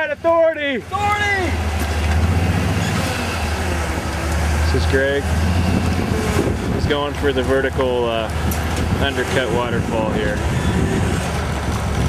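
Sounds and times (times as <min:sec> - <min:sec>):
buggy engine rumbling: 0:00.0 - 0:12.0.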